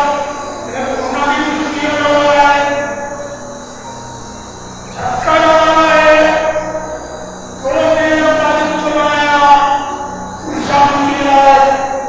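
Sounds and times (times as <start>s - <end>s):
monk chanting into a microphone: 0.0s - 3.4s, 4.9s - 12.0s.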